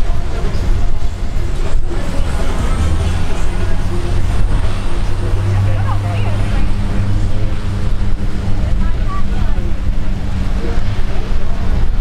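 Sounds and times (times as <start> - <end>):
turboprop engines droning: 0.0 - 12.0.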